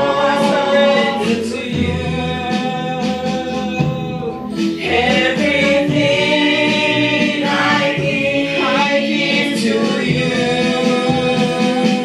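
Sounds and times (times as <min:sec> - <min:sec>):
group singing praise song: 0:00.0 - 0:12.0.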